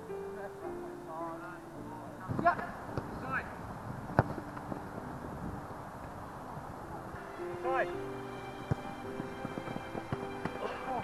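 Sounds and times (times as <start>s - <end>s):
background music: 0.0s - 11.0s
ball being kicked: 2.2s - 3.3s, 4.0s - 5.1s, 8.6s - 10.7s
footballers shouting: 6.9s - 11.0s.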